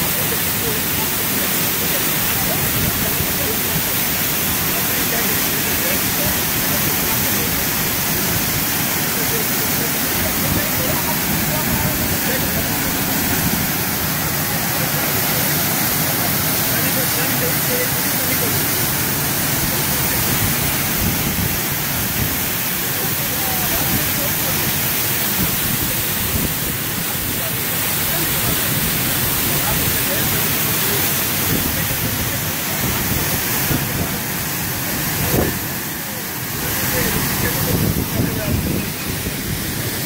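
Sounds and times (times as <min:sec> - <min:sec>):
waterfall rushing: 0:00.0 - 0:40.0.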